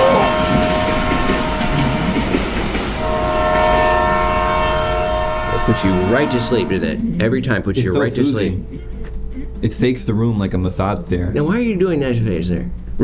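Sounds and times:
train horn chord: 0.0s - 7.0s
railcars rumbling past: 0.0s - 7.7s.

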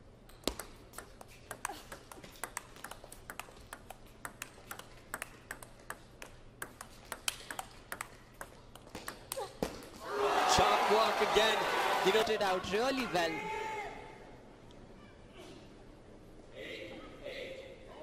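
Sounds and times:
table tennis ball clicking: 0.3s - 9.4s.

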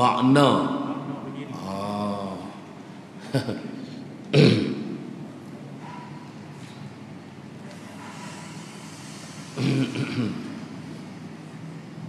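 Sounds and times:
low room hum: 0.0s - 12.0s
man's throat noise: 4.3s - 5.1s, 9.5s - 10.7s.

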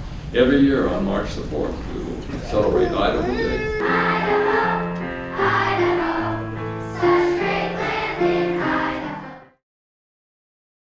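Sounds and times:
children's choir singing: 2.8s - 9.6s
piano accompaniment: 2.8s - 9.6s.

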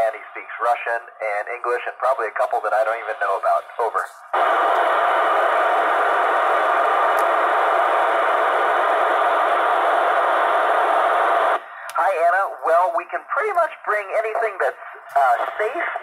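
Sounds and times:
person speaking over radio: 0.0s - 4.2s, 12.0s - 16.0s
loud radio static hiss: 0.0s - 12.5s, 13.4s - 16.0s.

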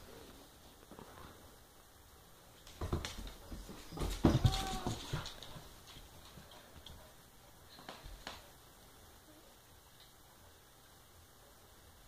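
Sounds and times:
paws clattering on tiled floor: 2.6s - 8.6s.

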